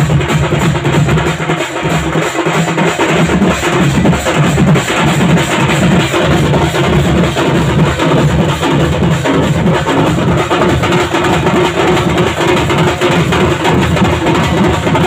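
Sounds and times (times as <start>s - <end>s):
street drum band playing: 0.0s - 15.0s.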